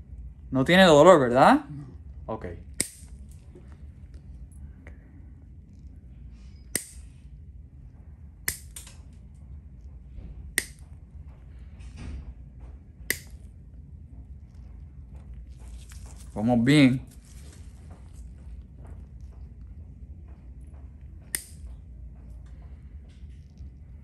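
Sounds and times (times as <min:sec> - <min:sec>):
nail nippers cracking through toenail: 0:02.8 - 0:03.4, 0:06.8 - 0:07.0, 0:08.5 - 0:09.0, 0:10.6 - 0:10.8, 0:13.1 - 0:13.4, 0:21.3 - 0:21.6.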